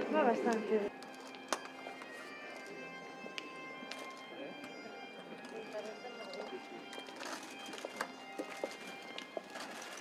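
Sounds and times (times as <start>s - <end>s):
footsteps on stone paving: 0.0s - 10.0s.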